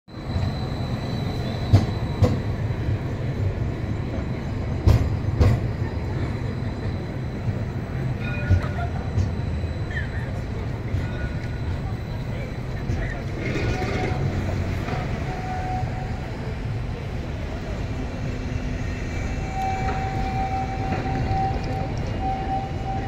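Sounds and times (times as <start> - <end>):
tram rumbling past: 0.1 - 23.0.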